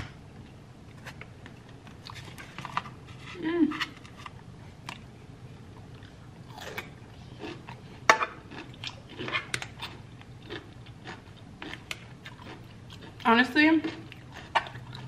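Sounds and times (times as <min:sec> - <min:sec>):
chewing and crunching: 0:05.8 - 0:15.0.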